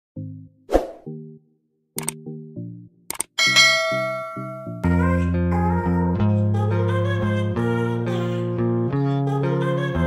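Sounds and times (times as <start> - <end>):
bell-like notification ding: 3.4 - 4.8.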